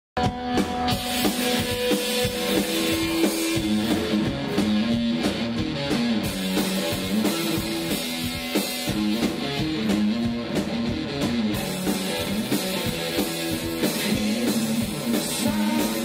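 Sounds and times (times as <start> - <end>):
drum kit beating: 0.2 - 16.0
electric guitar riff: 0.2 - 16.0.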